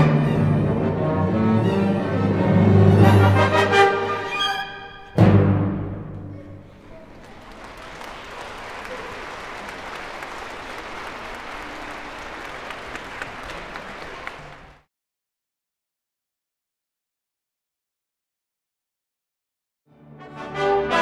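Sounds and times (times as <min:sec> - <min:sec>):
audience applauding: 0:06.4 - 0:14.9.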